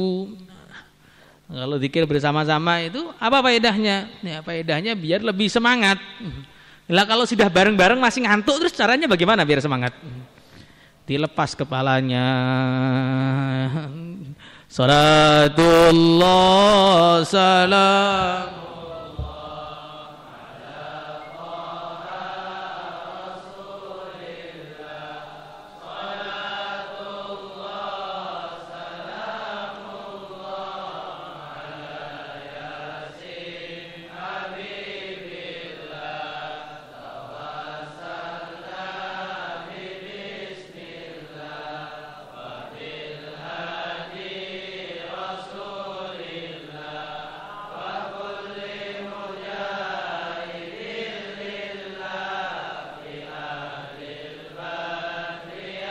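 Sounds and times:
voices chanting slow melody: 12.2 - 55.9.

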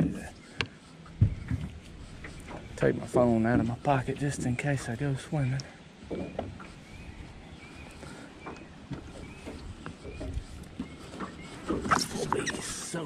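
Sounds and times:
knocks and handling noise in boat: 0.0 - 13.0.

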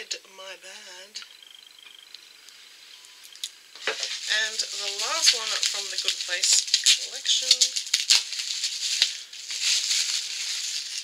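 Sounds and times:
packaging rustling: 3.2 - 11.0.

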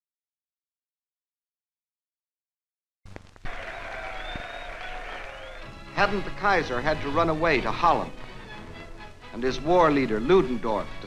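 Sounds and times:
crowd cheering and clapping: 3.4 - 6.4.

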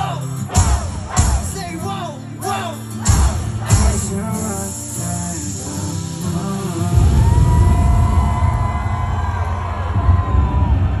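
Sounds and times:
heavy bass beat: 0.0 - 1.8, 3.0 - 4.8, 6.9 - 11.0.

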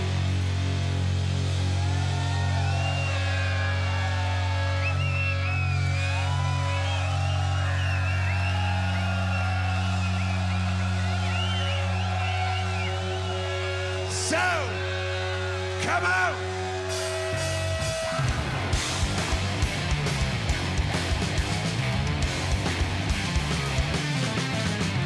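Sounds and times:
low bass drone: 0.0 - 7.6, 8.5 - 25.0
wavering electric guitar lines: 9.4 - 25.0.

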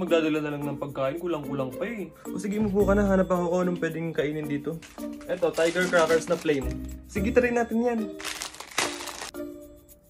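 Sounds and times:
background music: 0.0 - 10.0
plastic packet crinkling: 4.7 - 7.1, 8.0 - 9.4.

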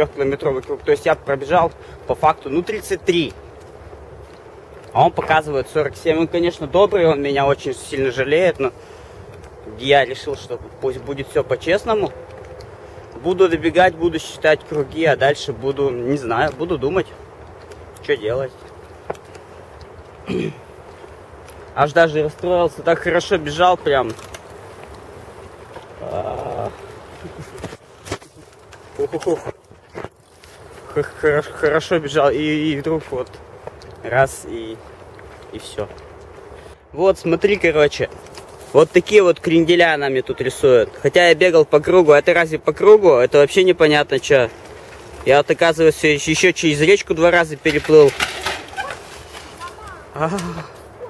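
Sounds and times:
man speaking: 0.0 - 3.4, 4.9 - 8.8, 9.6 - 12.3, 13.1 - 17.2, 18.0 - 18.7, 21.8 - 24.2, 26.0 - 26.9, 28.9 - 29.6, 30.8 - 33.4, 34.0 - 36.0, 36.9 - 44.6, 45.2 - 48.2
outdoor background noise: 0.0 - 51.0.

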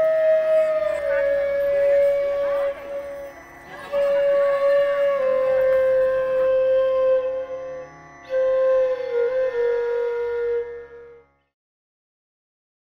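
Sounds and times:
faint voices: 0.0 - 7.9
flute playing long held notes: 0.0 - 11.6.

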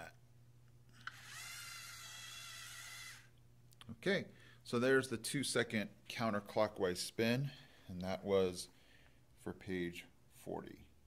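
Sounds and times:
high-pitched motor gear whir: 1.0 - 3.3.

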